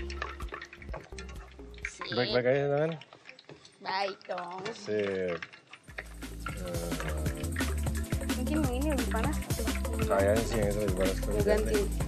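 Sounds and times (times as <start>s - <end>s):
soft background music: 0.0s - 3.0s, 5.9s - 12.0s
hot oil crackling in frying pan: 0.0s - 12.0s.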